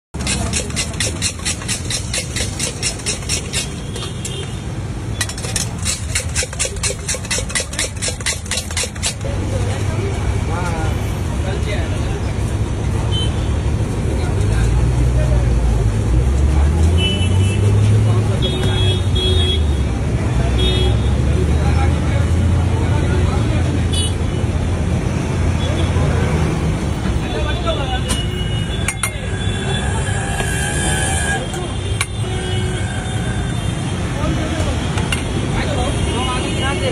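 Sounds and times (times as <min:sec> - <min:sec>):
street traffic rumbling: 0:00.1 - 0:36.9
steel spoon clanging on bowl: 0:05.2 - 0:09.3, 0:28.8 - 0:29.3
voices: 0:25.6 - 0:36.9.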